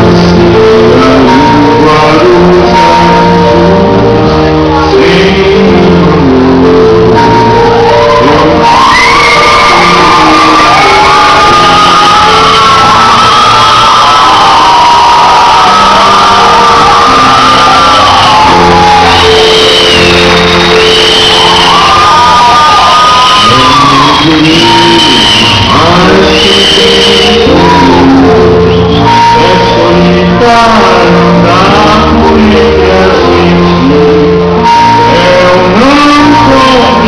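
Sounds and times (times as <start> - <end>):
crowd shouting and singing along: 0.0 - 37.0
live band playing: 0.0 - 37.0.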